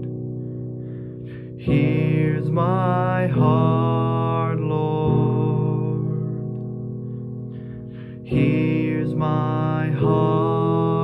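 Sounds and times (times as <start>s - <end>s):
man singing long notes: 1.3s - 6.6s, 8.2s - 11.0s.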